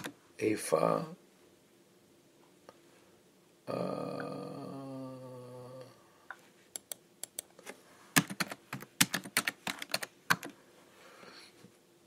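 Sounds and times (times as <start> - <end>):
typing on computer keyboard: 8.2 - 10.6.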